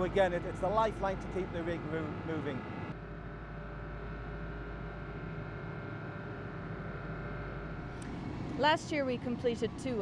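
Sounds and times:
faint steady whine: 0:00.0 - 0:10.0
marine engines droning: 0:00.0 - 0:10.0.

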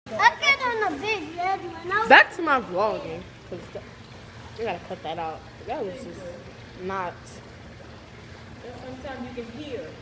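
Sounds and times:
child talking: 0:00.1 - 0:02.3.

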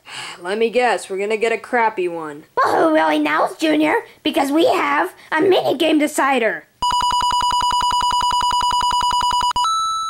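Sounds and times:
high held electronic tone: 0:06.8 - 0:10.0
rapid trilling beep: 0:06.8 - 0:10.0.

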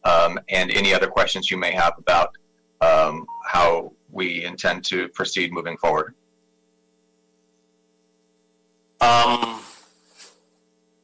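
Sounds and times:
person speaking: 0:00.0 - 0:06.1, 0:09.0 - 0:09.8
faint electrical hum: 0:00.0 - 0:11.0.

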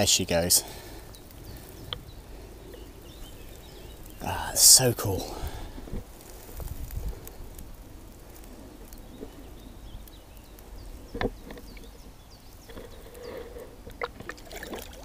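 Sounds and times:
water sloshing: 0:12.7 - 0:15.0.

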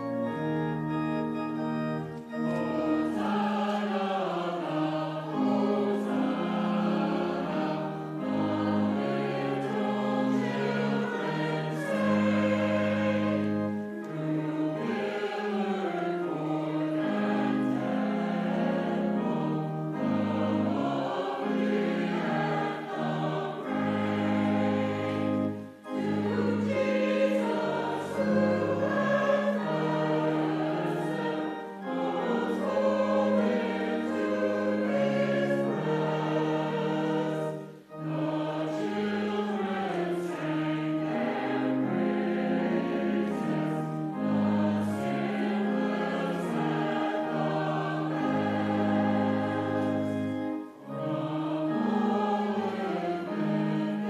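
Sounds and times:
mixed choir singing: 0:02.2 - 0:54.0.

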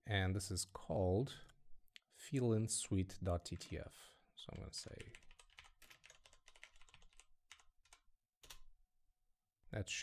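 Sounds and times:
faint keyboard typing: 0:03.4 - 0:08.7.

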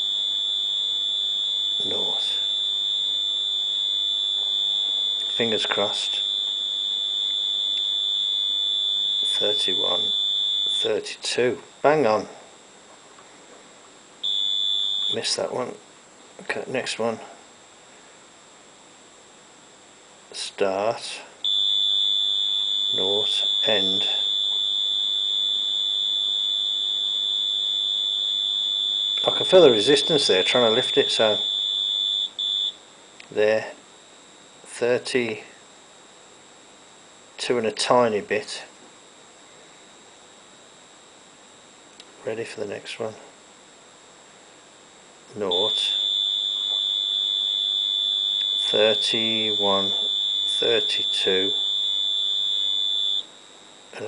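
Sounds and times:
high-pitched buzzer tone: 0:00.0 - 0:11.1, 0:14.2 - 0:15.5, 0:21.4 - 0:32.8, 0:45.4 - 0:54.0.

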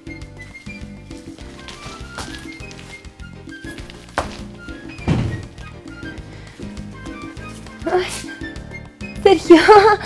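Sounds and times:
background music sustained notes: 0:00.0 - 0:10.0
thuds: 0:04.2 - 0:06.0.

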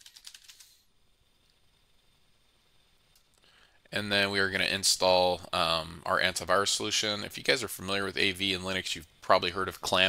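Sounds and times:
computer keyboard typing: 0:00.0 - 0:00.7.

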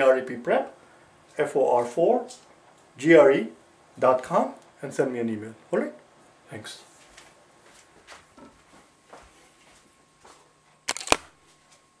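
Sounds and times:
camera mechanical clicks: 0:10.9 - 0:11.3.

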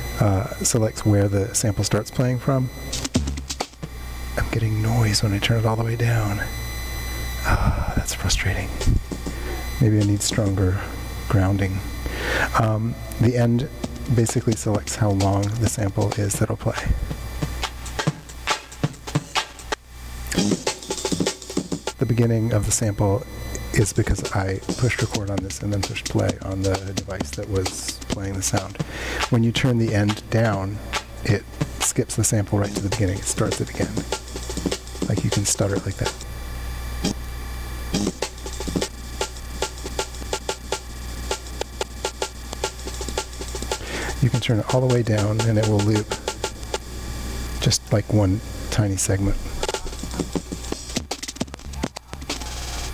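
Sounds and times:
lo-fi drum loop: 0:00.0 - 0:06.5, 0:07.4 - 0:36.3, 0:37.0 - 0:37.2, 0:37.9 - 0:46.9, 0:47.6 - 0:52.9
low electrical hum: 0:00.0 - 0:52.9.

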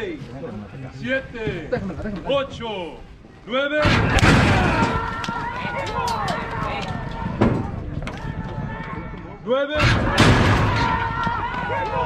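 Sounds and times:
loud shouting voices: 0:03.8 - 0:12.0
starting gate doors banging open: 0:09.8 - 0:11.3.

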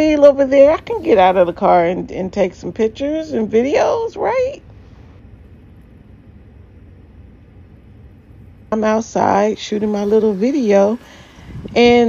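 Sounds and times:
low rumble of outdoor background: 0:00.0 - 0:12.0.

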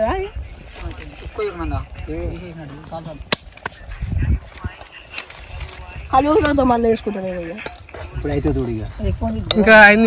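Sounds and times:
people talking quietly: 0:00.0 - 0:10.0.

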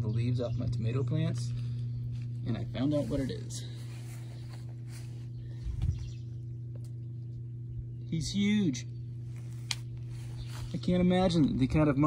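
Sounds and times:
low hum of constant tones: 0:00.0 - 0:12.0.

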